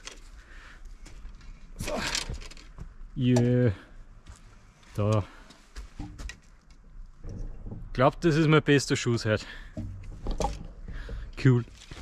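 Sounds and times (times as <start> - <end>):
faint clicks and rustles: 0.0 - 3.2
person speaking: 4.9 - 5.4.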